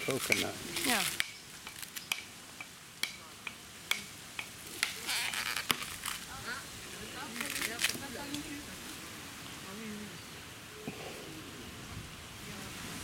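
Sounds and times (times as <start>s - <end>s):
coconut husk rasping tears: 0.0s - 2.2s, 4.6s - 6.4s, 7.2s - 8.4s
coconut fibre cracking: 4.7s - 6.3s, 7.3s - 8.4s.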